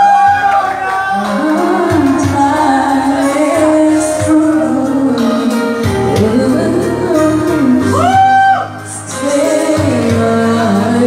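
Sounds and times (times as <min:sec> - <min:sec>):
musical accompaniment: 0:00.0 - 0:11.0
woman singing a pop ballad: 0:01.1 - 0:11.0.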